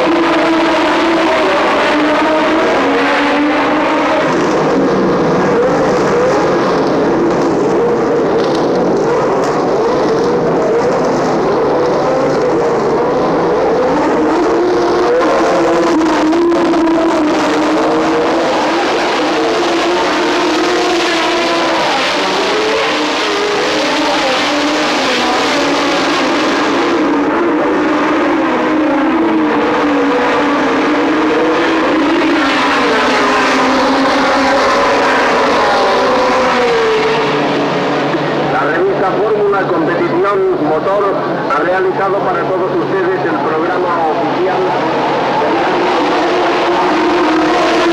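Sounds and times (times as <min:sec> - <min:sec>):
racing engines revving: 0:00.0 - 0:47.9.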